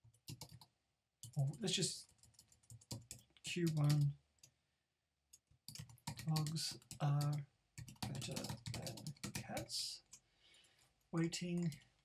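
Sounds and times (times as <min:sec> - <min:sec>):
keyboard keys typing: 0:00.0 - 0:04.5, 0:05.3 - 0:10.2.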